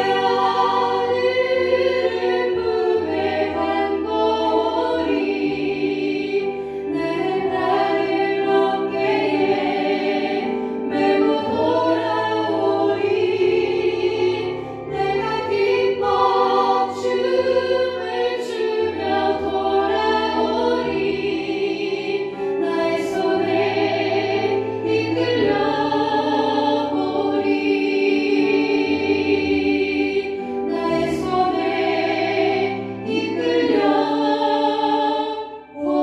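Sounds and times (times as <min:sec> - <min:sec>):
voices singing worship song: 0:00.0 - 0:36.0.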